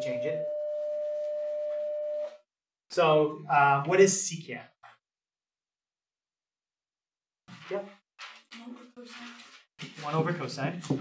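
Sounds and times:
speech: 0.0 - 0.4, 2.9 - 4.8, 10.0 - 11.0.

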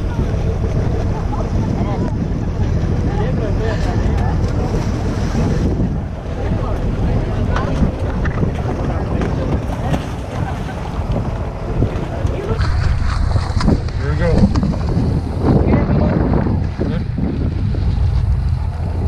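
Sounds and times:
sea water washing around boat: 0.0 - 19.0
wind buffeting microphone: 0.0 - 19.0.

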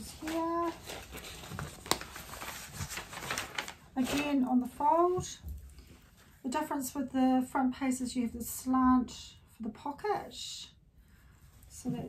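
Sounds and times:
paper and fabric rustling: 0.0 - 6.9.

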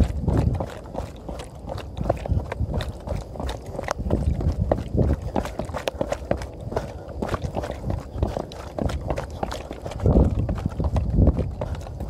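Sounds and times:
quick footsteps: 0.0 - 12.0.

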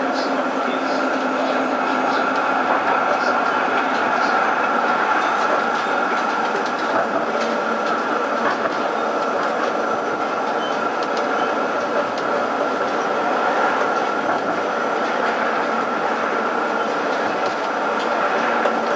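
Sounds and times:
tram wheels rolling on rails: 0.0 - 18.9.

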